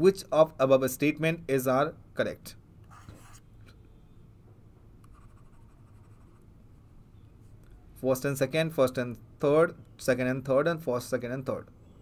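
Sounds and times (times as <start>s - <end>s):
stylus scratching on tablet: 2.9s - 3.5s, 5.1s - 6.5s.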